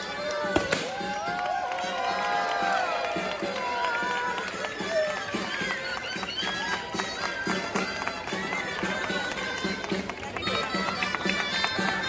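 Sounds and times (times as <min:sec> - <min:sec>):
reedy wind instruments melody: 0:00.0 - 0:12.0.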